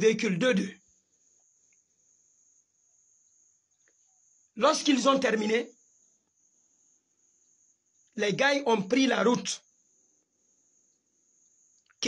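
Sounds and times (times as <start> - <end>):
insect trilling: 0.0 - 12.0.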